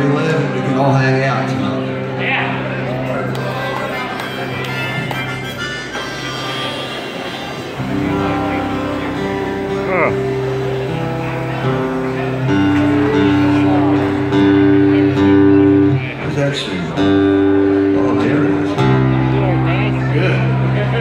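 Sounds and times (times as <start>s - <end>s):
live band playing: 0.0s - 21.0s.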